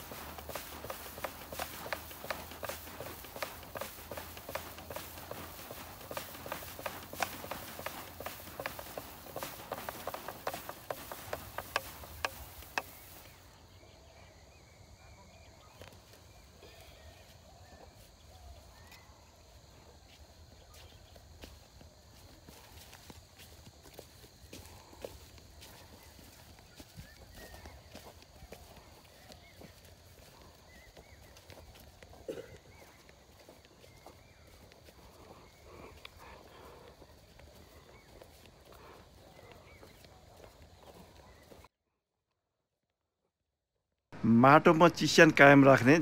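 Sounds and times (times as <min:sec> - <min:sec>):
footsteps on dry soil: 0:00.0 - 0:13.6, 0:15.7 - 0:41.7, 0:44.2 - 0:46.0.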